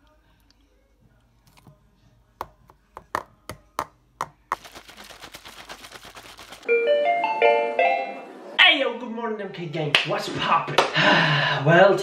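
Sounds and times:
music jingle with mallet notes: 0:06.7 - 0:08.4.

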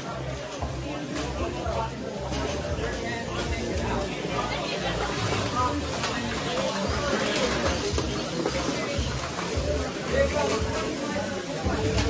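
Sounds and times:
background music: 0:00.0 - 0:12.0
indistinct crowd chatter: 0:00.0 - 0:12.0.

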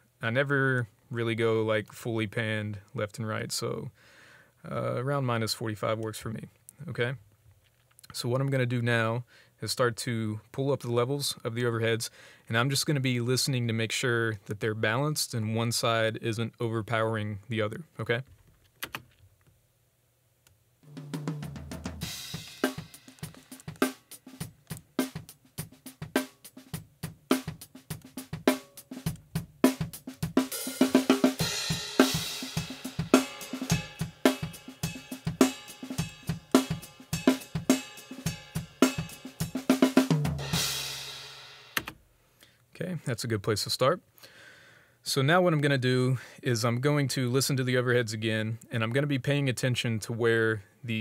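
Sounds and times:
drum kit playing a groove: 0:20.8 - 0:41.9.

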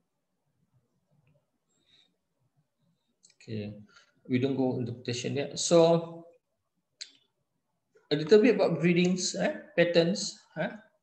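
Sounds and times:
person speaking: 0:03.2 - 0:06.4, 0:08.1 - 0:11.0.

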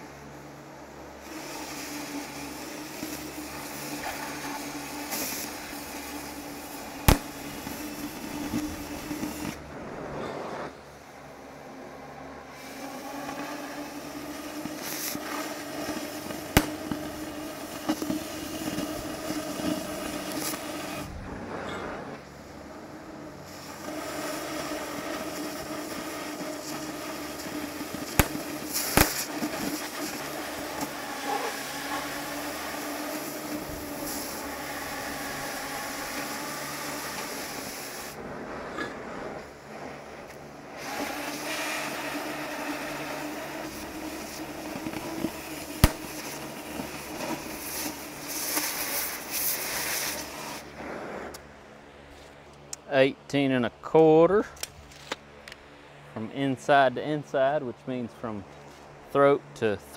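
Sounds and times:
cutting torch hissing: 0:00.0 - 0:51.6
torch sharp pops: 0:01.1 - 0:09.6, 0:12.6 - 0:22.4, 0:23.4 - 0:51.5.

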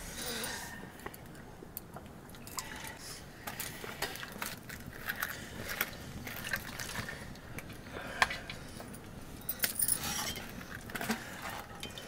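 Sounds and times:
ladle clinking on metal bowls: 0:11.7 - 0:12.0.

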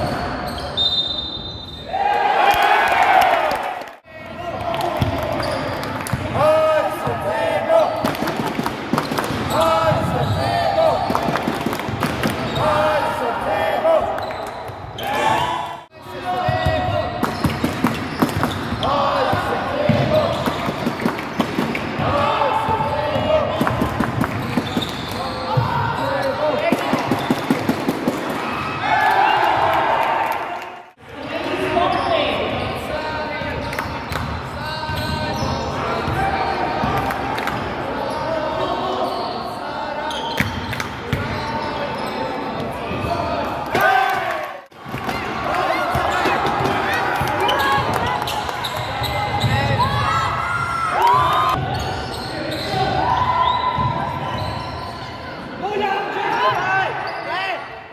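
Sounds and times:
basketball bouncing on wooden court: 0:16.5 - 0:22.0, 0:48.7 - 0:50.0.

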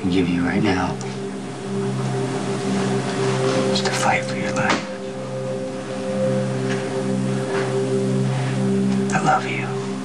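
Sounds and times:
soft sustained chords: 0:00.0 - 0:10.0.

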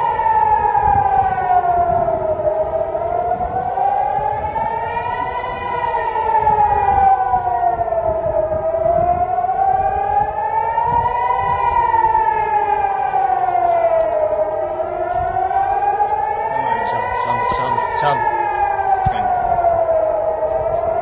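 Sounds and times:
air-raid siren wailing: 0:00.0 - 0:21.0.

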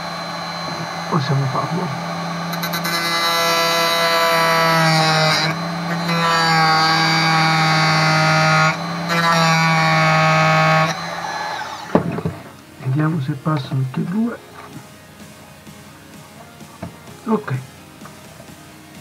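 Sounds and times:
rotary tool grinding plastic: 0:02.0 - 0:12.6.

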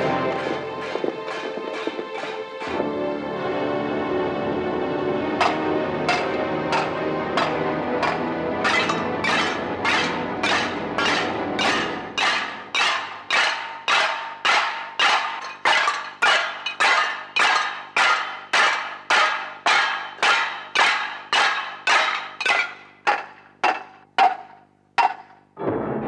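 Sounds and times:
spoons beating metal plates: 0:00.0 - 0:02.8, 0:05.4 - 0:25.3.

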